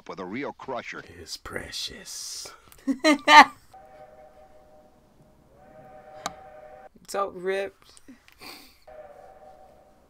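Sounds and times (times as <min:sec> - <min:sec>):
sustained musical chord: 0:03.8 - 0:06.9, 0:08.9 - 0:10.0.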